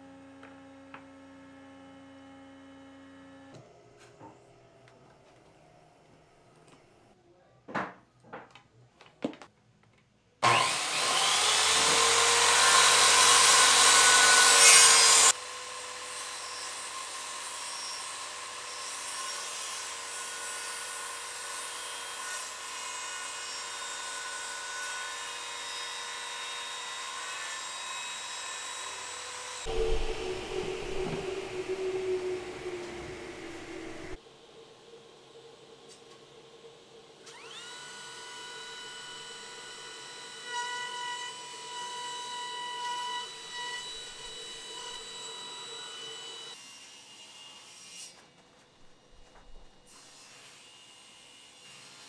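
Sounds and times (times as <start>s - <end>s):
saw blade cutting plywood: 10.4s - 15.4s
circular saw whining: 10.4s - 20.9s, 21.7s - 46.6s.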